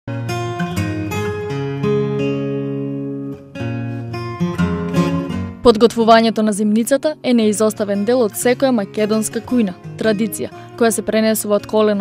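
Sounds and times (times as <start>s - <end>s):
plucked acoustic guitar music: 0.1s - 12.0s.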